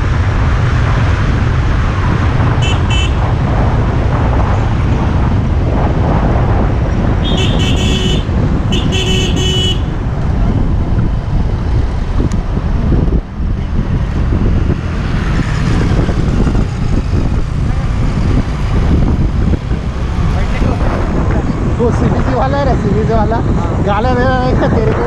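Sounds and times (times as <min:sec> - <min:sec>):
wind and road noise: 0:00.0 - 0:25.0
vehicle horn honking: 0:02.6 - 0:03.2, 0:07.2 - 0:09.9.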